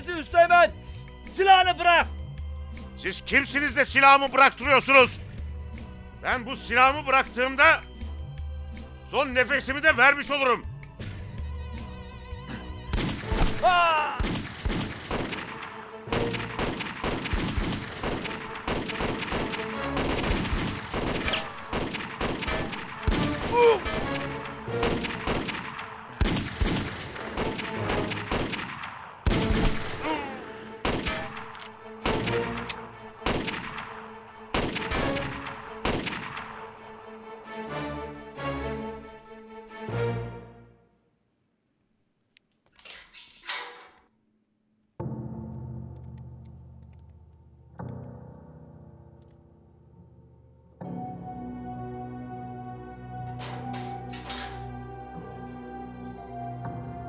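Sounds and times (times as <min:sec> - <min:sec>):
background music: 0:00.0 - 0:41.5, 0:44.8 - 0:57.0
gunshots: 0:12.9 - 0:30.1, 0:30.7 - 0:36.8
automatic rifle fire: 0:14.2 - 0:23.6, 0:24.8 - 0:30.0, 0:30.8 - 0:33.9, 0:34.5 - 0:36.5.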